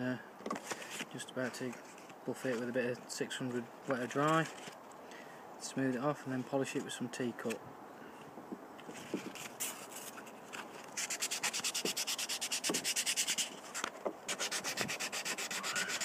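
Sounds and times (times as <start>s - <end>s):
sandpaper rubbing by hand: 11.0s - 16.0s.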